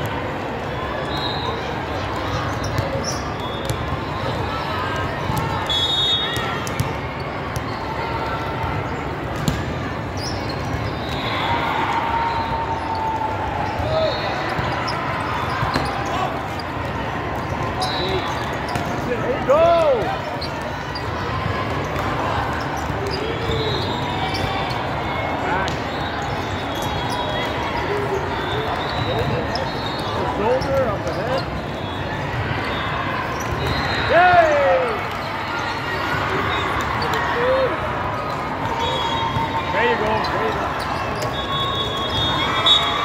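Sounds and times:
crowd chatter: 0.0s - 43.0s
shoes squeaking on court floor: 0.1s - 43.0s
volleyball hits: 8.6s - 9.9s
short squeals: 10.1s - 16.8s, 17.4s - 19.1s, 25.8s - 37.6s, 38.2s - 43.0s.

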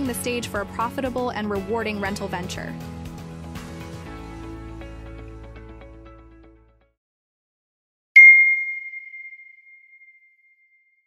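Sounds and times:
bright ding: 8.2s - 10.9s.

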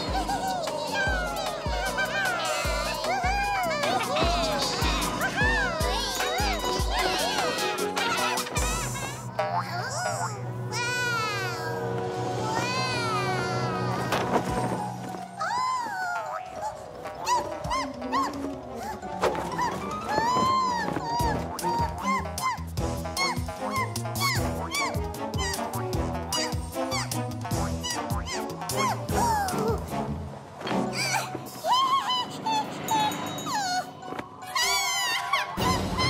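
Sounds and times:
background music: 0.0s - 36.0s
cartoon character whimpering squeaks: 15.4s - 27.2s, 27.8s - 29.8s, 30.9s - 36.0s
cartoon character high squeaks: 30.9s - 36.0s.

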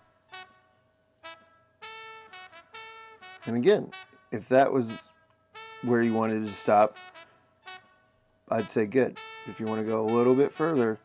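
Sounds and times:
solo trumpet notes: 0.0s - 7.9s, 8.5s - 11.0s.

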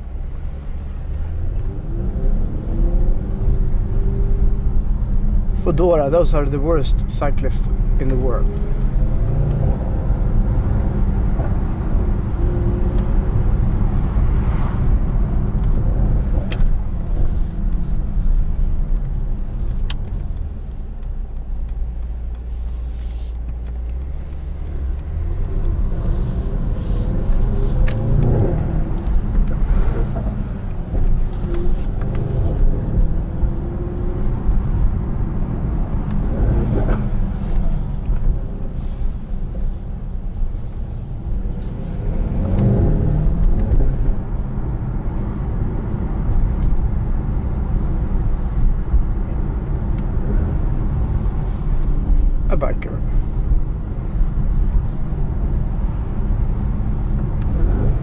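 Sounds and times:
car engine rumble from inside cabin: 0.0s - 58.0s.

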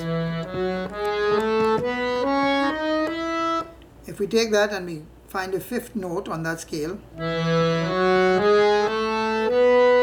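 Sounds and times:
harmonium playing a scale: 0.0s - 3.8s, 7.1s - 10.0s.

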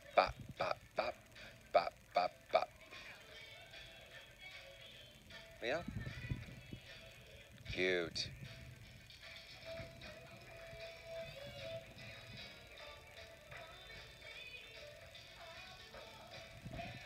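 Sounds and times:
faint music: 0.0s - 17.0s.

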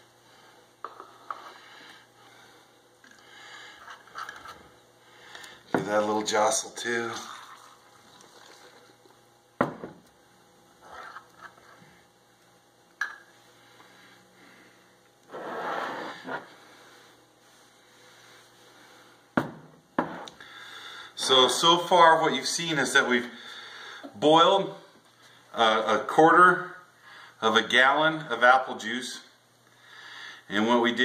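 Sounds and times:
liquid sloshing in glass jug: 7.2s - 9.1s.

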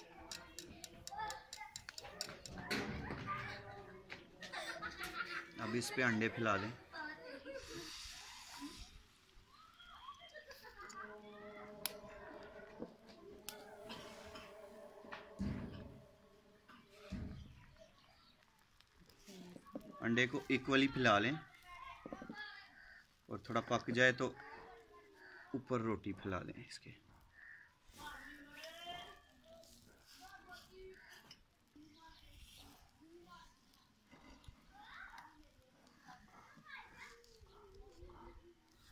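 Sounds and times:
egg sizzling in hot oil: 7.3s - 12.0s.

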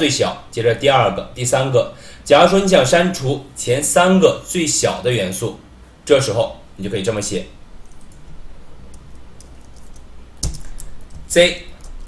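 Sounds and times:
keyboard keystrokes: 8.9s - 12.0s.

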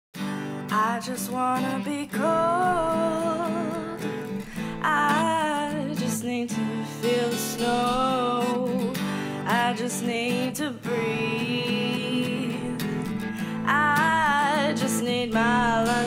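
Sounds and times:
acoustic guitar: 0.1s - 16.0s
person singing with vibrato: 0.6s - 16.0s.

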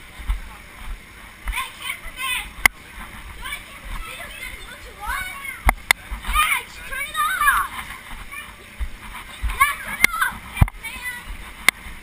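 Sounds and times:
children shouting and squealing: 6.3s - 8.7s, 9.4s - 11.3s.

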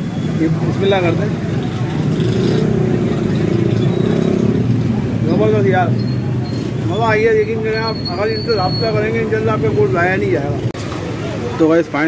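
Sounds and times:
vehicle engine droning: 0.0s - 11.5s
street noise: 0.0s - 12.0s.

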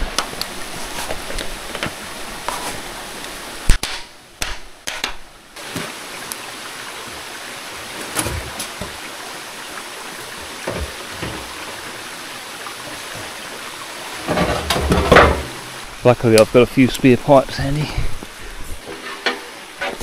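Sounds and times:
stream running: 0.0s - 4.4s, 5.2s - 20.0s
metal pipe scraping and knocking: 18.8s - 20.0s.

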